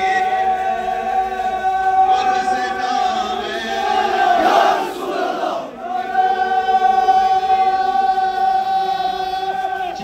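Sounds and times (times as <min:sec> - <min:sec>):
crowd of men chanting: 0:00.0 - 0:10.0.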